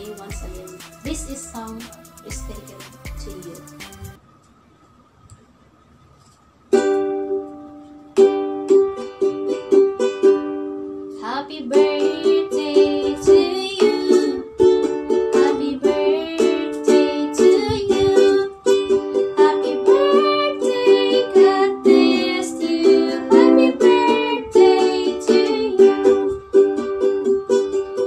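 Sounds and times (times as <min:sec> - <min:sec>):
woman singing: 0:00.0 - 0:03.7, 0:11.2 - 0:14.5, 0:15.3 - 0:26.2
ukulele strumming: 0:00.0 - 0:04.2, 0:06.7 - 0:28.0.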